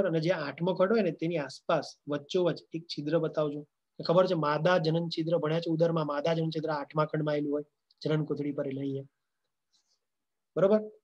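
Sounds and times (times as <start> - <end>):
man speaking: 0.0 - 9.2, 10.5 - 11.0.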